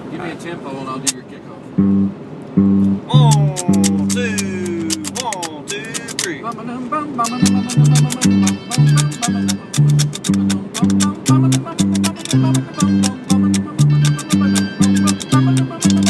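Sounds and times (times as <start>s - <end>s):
bluegrass instrumental: 1.7s - 16.0s
alternating bass notes: 1.8s - 6.1s, 7.2s - 16.0s
chopped mandolin chords: 1.8s - 6.4s, 7.2s - 16.0s
acoustic guitar: 1.8s - 16.0s.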